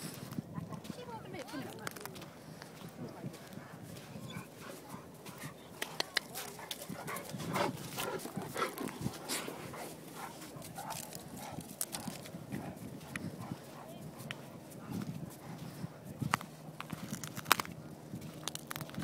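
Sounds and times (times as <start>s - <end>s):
dogs vocalizing: 4.1s - 15.9s.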